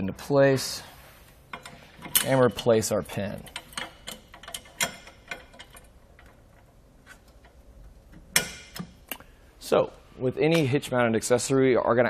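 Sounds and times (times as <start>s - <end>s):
small metal clicks: 1.5s - 9.3s.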